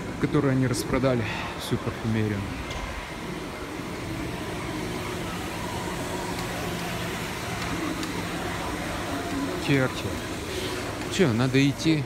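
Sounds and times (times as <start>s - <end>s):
floor scrubber motor hum: 0.0s - 12.0s.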